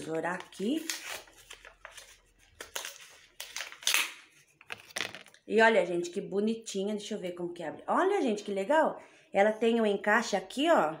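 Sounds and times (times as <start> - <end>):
plastic packaging crinkling: 0.0 - 5.4.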